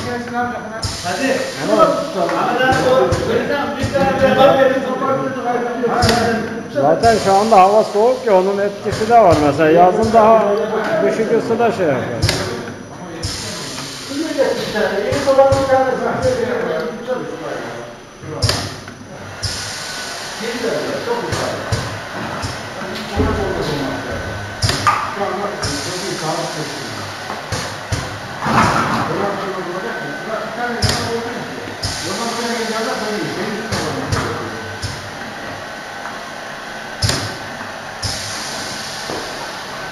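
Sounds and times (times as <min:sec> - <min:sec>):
people talking: 0:00.0 - 0:18.6, 0:20.4 - 0:21.8, 0:22.4 - 0:27.1, 0:28.5 - 0:34.9
filling machine running: 0:00.0 - 0:39.9
air hissing bursts: 0:00.8 - 0:04.6, 0:06.0 - 0:10.5, 0:11.6 - 0:16.5, 0:18.4 - 0:39.9.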